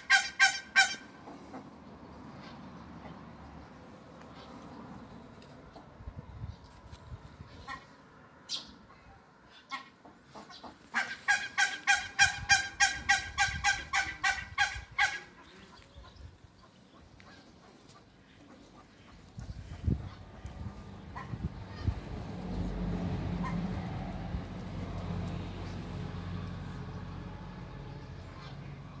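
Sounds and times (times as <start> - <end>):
duck quacking: 0.0 - 1.6, 9.5 - 15.5.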